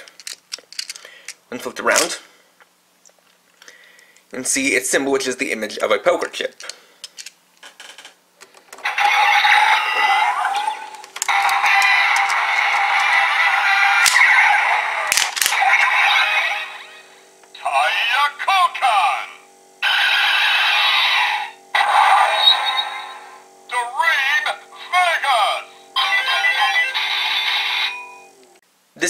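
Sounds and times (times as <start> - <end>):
steady hum: 8.2 - 29.0
toy electronic sound effects: 8.8 - 28.2
sharp clicks: 15.1 - 15.7
recorded voice calls: 17.5 - 28.0.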